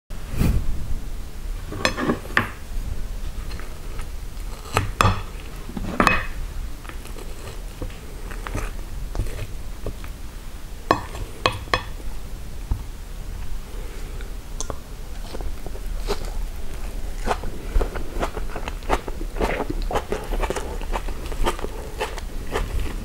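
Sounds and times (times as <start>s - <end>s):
fork knocking and scraping plate: 1.7s - 2.6s.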